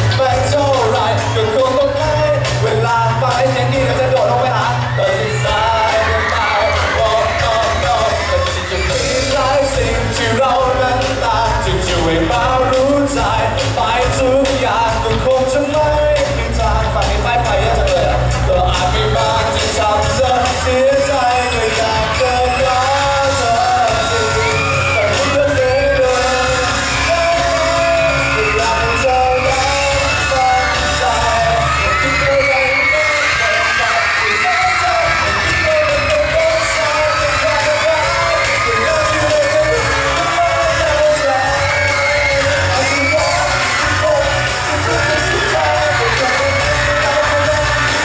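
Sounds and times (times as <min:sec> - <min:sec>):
audience screaming and yelling: 0:00.0 - 0:48.0
man singing over a rock band: 0:00.0 - 0:48.0.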